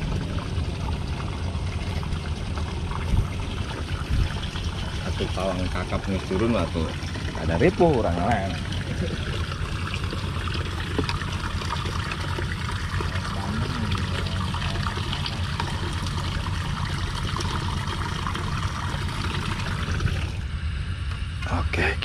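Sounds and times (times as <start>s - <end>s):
low rumble: 0.0s - 7.6s
trickling splashing water: 0.0s - 20.4s.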